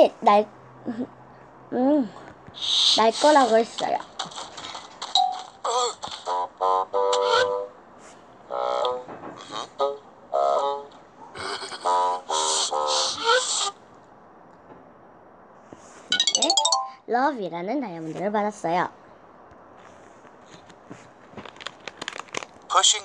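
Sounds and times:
bright chime run: 0:16.1 - 0:17.0
short musical sound effects: 0:16.1 - 0:17.0.

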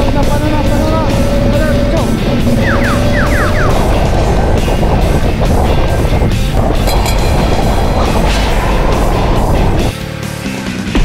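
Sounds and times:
loud background music: 0:00.0 - 0:11.0.

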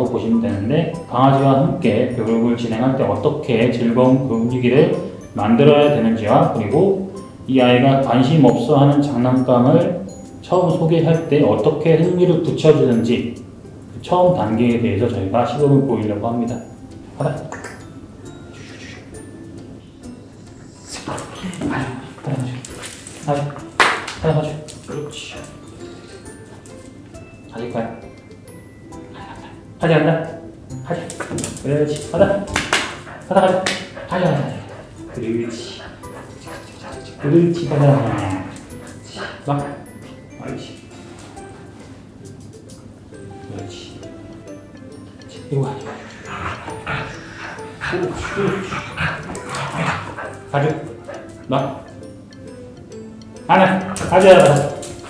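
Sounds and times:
background music: 0:00.0 - 0:55.0
dog whining: 0:32.9 - 0:39.5, 0:45.7 - 0:52.1
man calling excitedly: 0:53.5 - 0:54.8.

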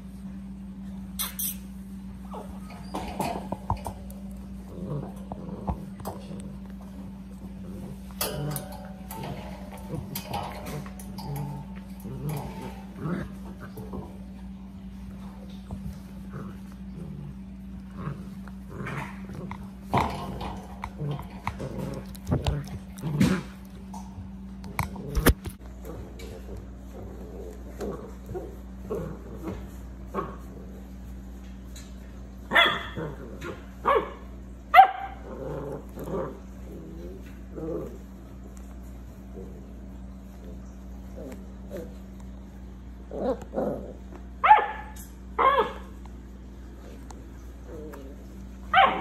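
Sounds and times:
low hum: 0:00.0 - 0:49.0
puppies growling and whimpering: 0:01.8 - 0:31.3, 0:32.8 - 0:33.8, 0:35.1 - 0:44.4, 0:46.7 - 0:49.0.

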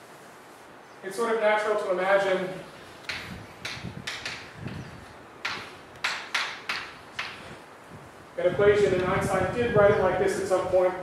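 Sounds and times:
chalk tapping and scraping: 0:02.8 - 0:07.6.

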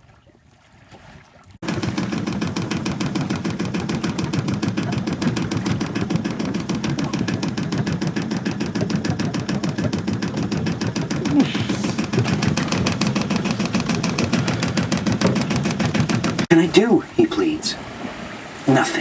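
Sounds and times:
boat engine chugging: 0:01.6 - 0:19.0.

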